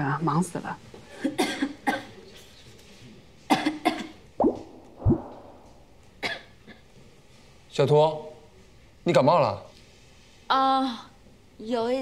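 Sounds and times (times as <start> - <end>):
woman coughing: 1.2 - 2.2, 3.5 - 4.2, 6.2 - 6.6.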